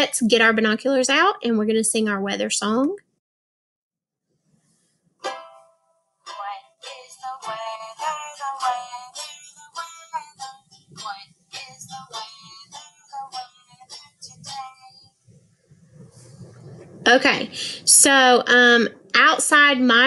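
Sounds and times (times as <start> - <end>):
children's song with plucked strings: 5.2 - 15.2.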